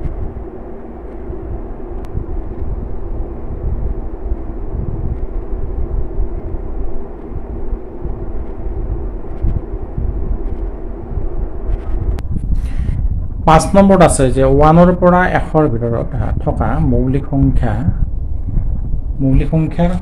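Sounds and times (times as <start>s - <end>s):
faint steady hum: 0.0s - 20.0s
low rumbling background noise: 0.0s - 20.0s.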